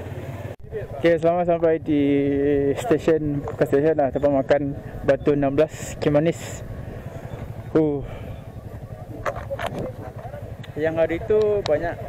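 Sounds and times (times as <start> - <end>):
motorcycle engines idling: 0.0 - 12.0
faint voices: 2.4 - 12.0.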